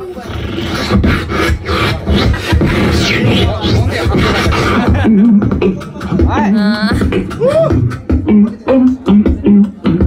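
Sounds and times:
beatboxing into microphone: 0.0 - 10.0.

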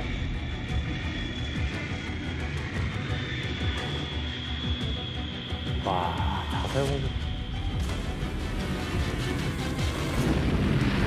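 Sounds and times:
background music: 0.0 - 11.0
dense low rumble: 5.7 - 11.0.

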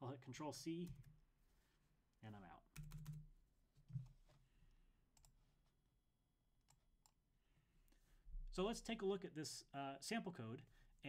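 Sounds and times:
computer keyboard clicks: 2.8 - 3.2.

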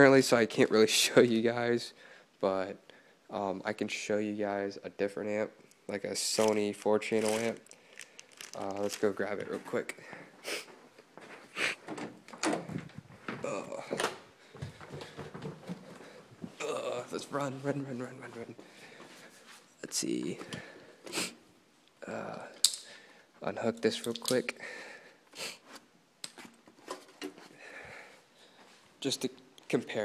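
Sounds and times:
rustling: 6.3 - 9.9
hands handling an amplifier: 10.7 - 16.6, 25.7 - 27.6.

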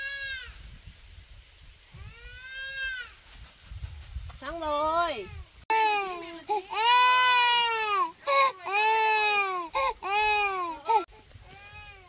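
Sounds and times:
toddler crying: 5.7 - 12.0.

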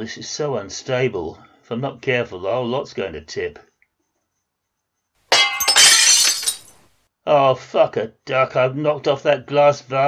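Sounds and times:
glass pieces tinkling: 5.3 - 6.8
glass vase smashing: 5.3 - 6.8.

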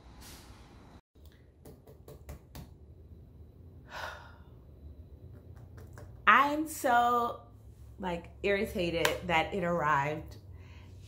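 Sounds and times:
woman sighing: 3.8 - 4.6.

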